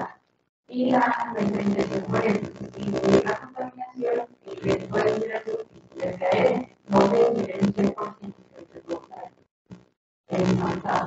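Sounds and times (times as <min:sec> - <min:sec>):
person talking: 0:00.7 - 0:09.2, 0:10.3 - 0:11.0.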